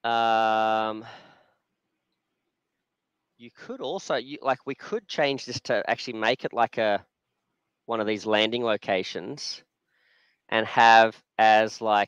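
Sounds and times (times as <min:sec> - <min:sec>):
man saying um: 0:00.1 - 0:01.1
breathy exhale: 0:01.0 - 0:01.6.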